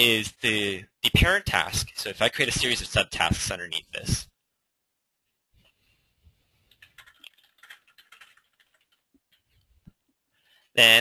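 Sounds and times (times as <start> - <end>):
faint keyboard typing: 6.4 - 10.1.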